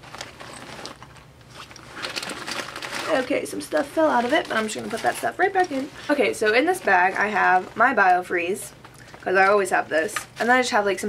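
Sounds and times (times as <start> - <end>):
pouch crinkly rustling: 0.0 - 9.6.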